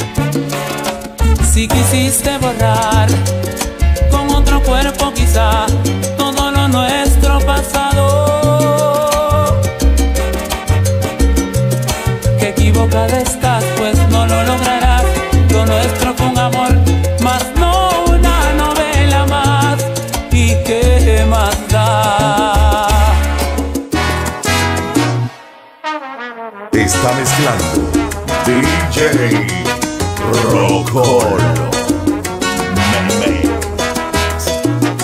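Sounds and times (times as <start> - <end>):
instrumental salsa music: 0.0 - 35.0
pulsing bass line: 1.2 - 6.0, 27.0 - 35.0.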